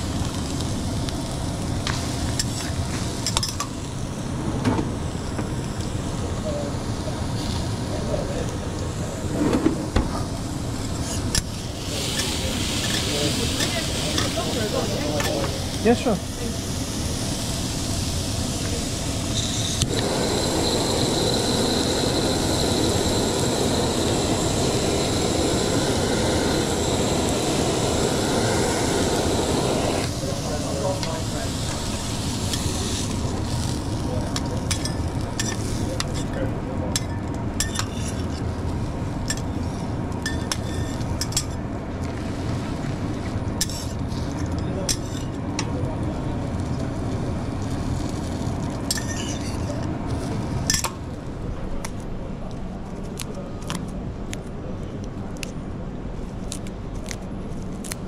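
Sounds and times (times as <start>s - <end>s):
kitchen torch hissing: 0.0s - 50.9s
griddle sizzling: 0.0s - 51.2s.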